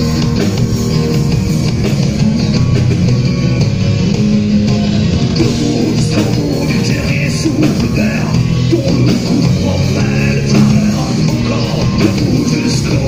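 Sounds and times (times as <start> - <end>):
bass guitar: 0.0 - 13.0
drum kit: 0.0 - 13.0
man singing: 5.4 - 13.0.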